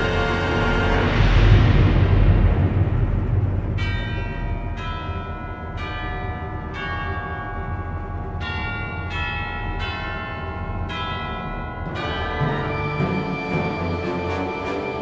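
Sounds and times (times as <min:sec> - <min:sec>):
symphony orchestra: 0:00.0 - 0:03.6, 0:11.8 - 0:15.0.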